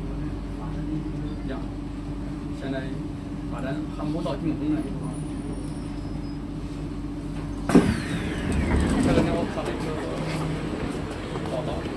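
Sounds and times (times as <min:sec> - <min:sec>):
steady hum: 0:06.6 - 0:11.9
sharp thud: 0:07.7 - 0:08.8.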